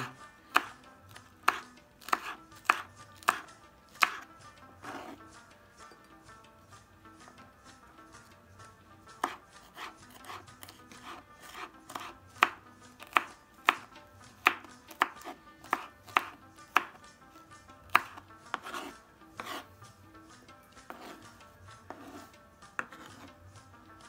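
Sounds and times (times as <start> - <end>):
knife chopping on wooden board: 0.0 - 5.2, 9.1 - 17.1, 17.9 - 19.7, 20.8 - 23.4.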